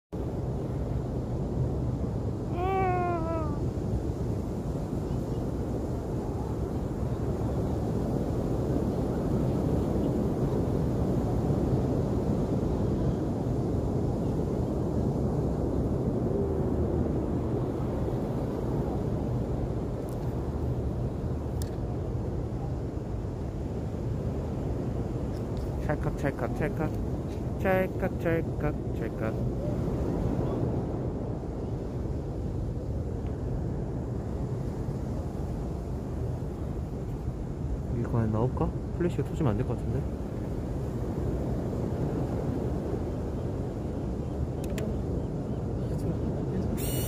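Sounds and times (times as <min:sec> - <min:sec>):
wind: 0:00.1 - 0:47.0
surf on beach: 0:00.2 - 0:47.0.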